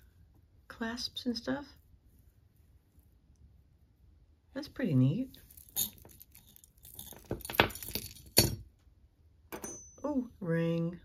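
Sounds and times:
metal jewelry clinking: 0:05.3 - 0:08.7, 0:09.5 - 0:10.2.

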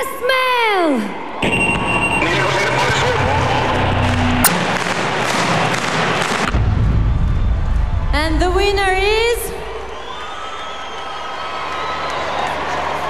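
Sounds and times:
arena crowd noise: 0:00.0 - 0:13.0
heavy low rumble: 0:06.5 - 0:10.0.

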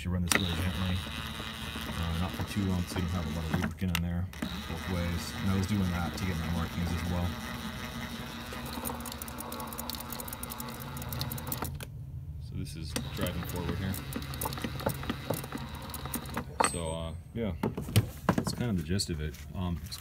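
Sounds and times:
gear whir: 0:00.0 - 0:11.9, 0:12.9 - 0:16.6
power tool motor drone: 0:00.3 - 0:11.8, 0:12.9 - 0:16.5.

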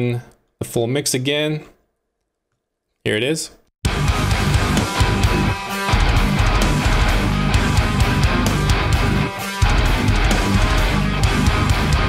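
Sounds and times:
heavy metal music: 0:03.8 - 0:12.0.

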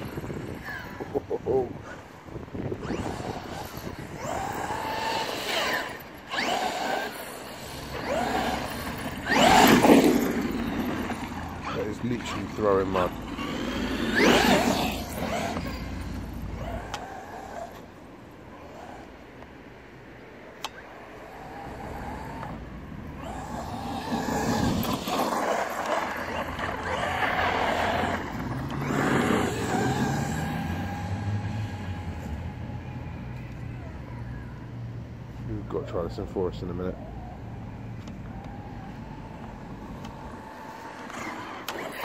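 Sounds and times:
tyres on tarmac and grass: 0:00.0 - 0:42.0
electric toy truck motor whining: 0:02.7 - 0:18.0, 0:20.6 - 0:34.1, 0:37.0 - 0:42.0.

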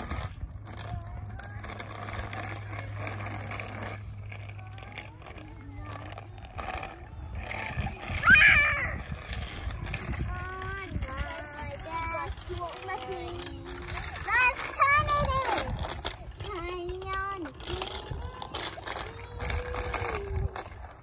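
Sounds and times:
faint children's voices: 0:00.0 - 0:21.0
steady low hum: 0:00.0 - 0:21.0
child's high-pitched cry: 0:07.2 - 0:09.5, 0:17.8 - 0:20.8.

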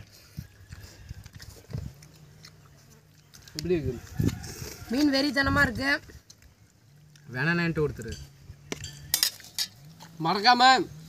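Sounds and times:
spoon clinking against metal pot: 0:08.0 - 0:09.8.

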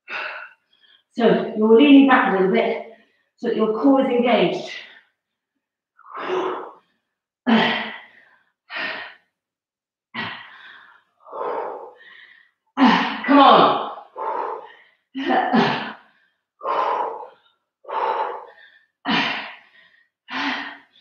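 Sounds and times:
woman breathing and grunting: 0:00.0 - 0:05.4, 0:06.0 - 0:09.4, 0:10.1 - 0:21.0.

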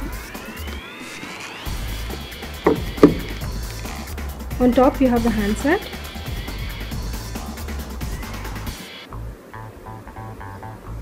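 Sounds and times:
background music: 0:00.0 - 0:11.0
handling knocks: 0:02.1 - 0:03.5.

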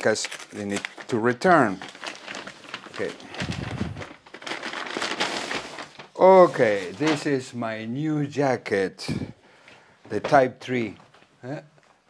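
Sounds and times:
paper bag crinkling: 0:00.0 - 0:07.5.

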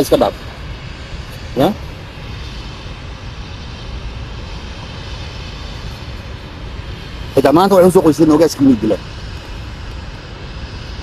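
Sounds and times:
low rumbling with hiss: 0:00.0 - 0:11.0.

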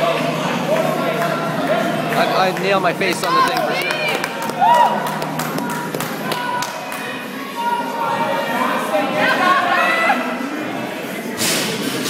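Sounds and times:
people talking and calling out: 0:00.0 - 0:11.6.

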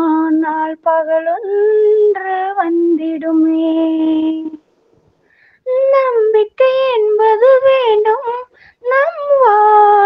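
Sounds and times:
woman singing unaccompanied: 0:00.0 - 0:04.6, 0:05.6 - 0:10.0.

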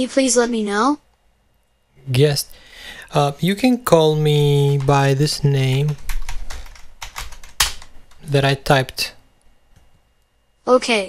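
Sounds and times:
laptop keyboard typing: 0:03.2 - 0:08.3.

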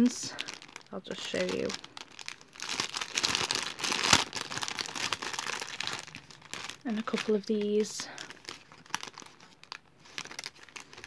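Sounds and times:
hands rummaging through paper cards: 0:00.0 - 0:11.0
plastic bag crinkling: 0:00.0 - 0:11.0.

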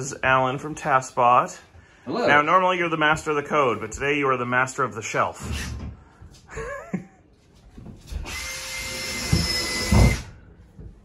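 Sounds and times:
cordless drill whine: 0:08.2 - 0:10.3.

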